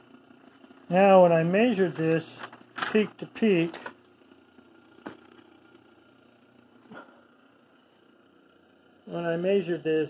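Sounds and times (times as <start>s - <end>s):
faint electric motor hum: 0.0s - 10.0s.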